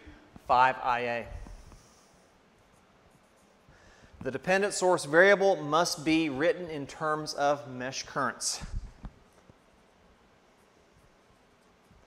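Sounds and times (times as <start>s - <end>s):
marker writing on whiteboard: 2.6s - 4.4s.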